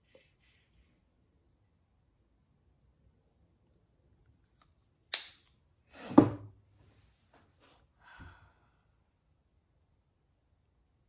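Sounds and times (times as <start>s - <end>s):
soft sigh: 8.0s - 8.9s.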